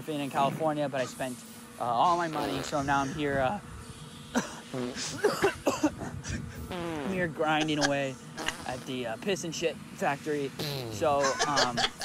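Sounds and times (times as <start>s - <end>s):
man laughing: 2.0s - 3.3s, 4.4s - 8.8s, 10.9s - 12.0s.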